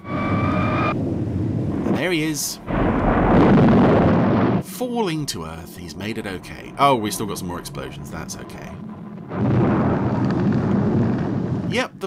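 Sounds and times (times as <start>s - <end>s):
explosion blast with heavy rumble: 0.0s - 11.9s.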